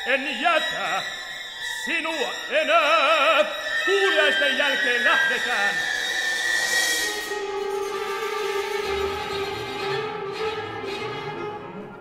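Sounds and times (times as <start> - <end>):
chamber orchestra playing slow music: 7.0 - 12.0.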